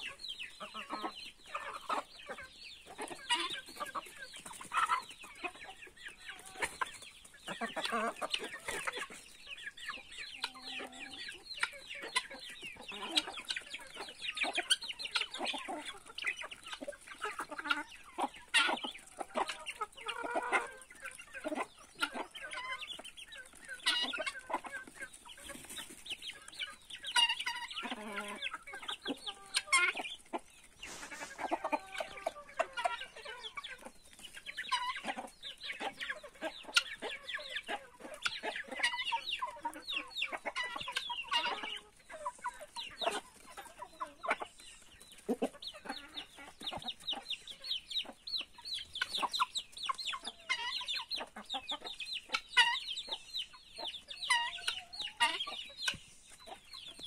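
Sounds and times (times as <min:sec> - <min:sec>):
chickens clucking: 0:00.0 - 0:57.0.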